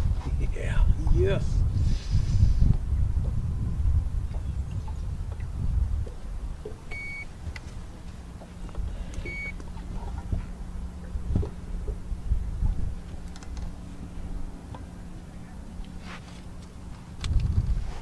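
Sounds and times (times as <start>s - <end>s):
wind on microphone: 0.0s - 15.9s, 17.1s - 18.0s
steady low hum: 0.0s - 18.0s
short electronic beeps: 6.9s - 7.3s, 9.3s - 9.6s.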